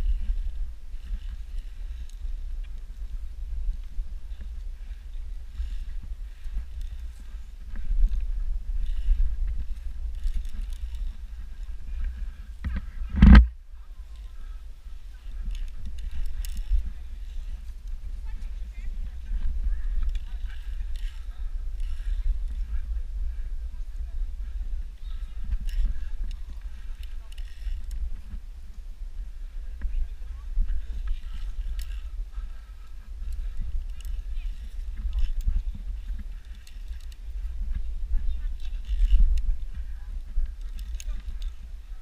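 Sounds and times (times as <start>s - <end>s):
faint distant voices: 0.0s - 42.0s
wind buffeting microphone: 0.0s - 42.0s.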